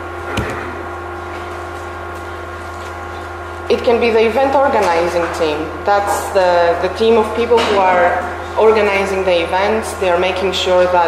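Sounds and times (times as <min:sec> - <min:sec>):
low electrical hum: 0:00.0 - 0:11.0
short low thump: 0:00.3 - 0:00.8.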